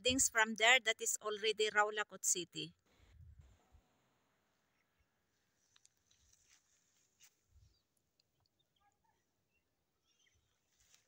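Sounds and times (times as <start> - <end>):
faint bird chirps: 7.5 - 10.8.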